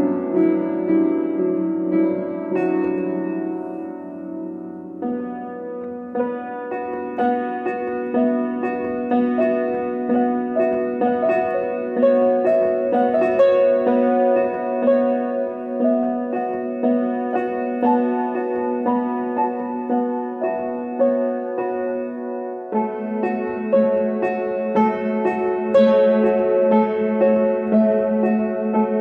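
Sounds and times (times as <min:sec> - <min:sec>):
upright piano playing: 0:00.0 - 0:29.0.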